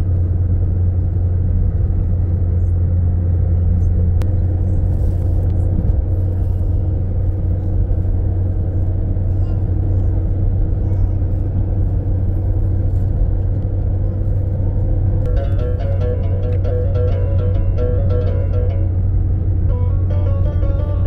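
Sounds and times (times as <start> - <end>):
car engine and tyre rumble: 0.0 - 21.0.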